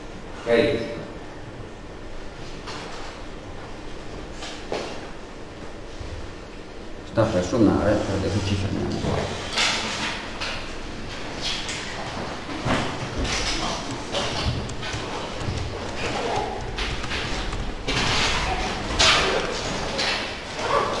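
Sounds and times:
chairs and desks scraping: 11.1s - 21.0s.

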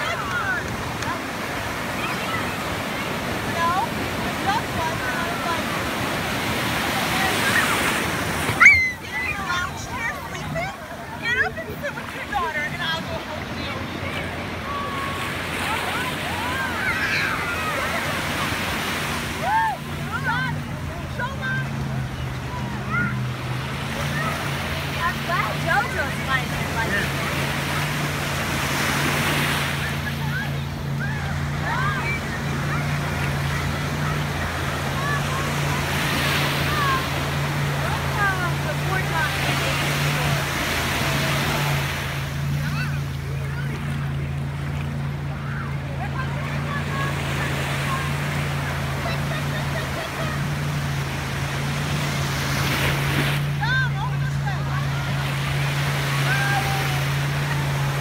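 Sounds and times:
distant voices calling out: 0.0s - 58.0s
ocean surf washing: 0.0s - 58.0s.

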